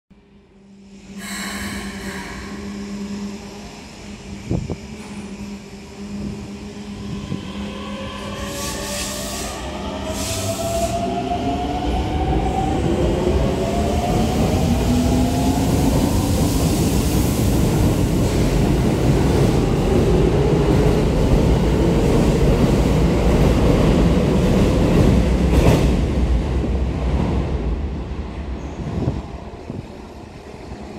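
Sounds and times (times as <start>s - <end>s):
train wheels on rails: 1.2s - 27.7s.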